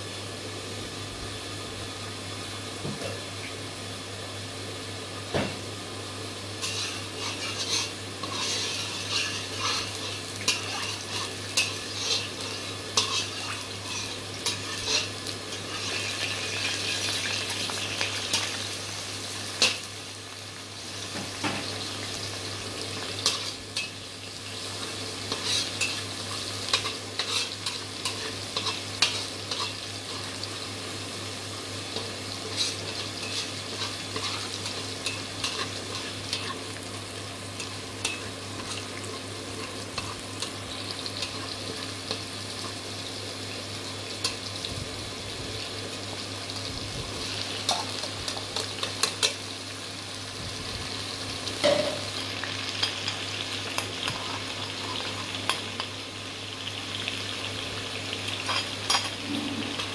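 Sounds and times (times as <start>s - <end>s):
garlic sizzling in hot oil: 0.0s - 59.9s.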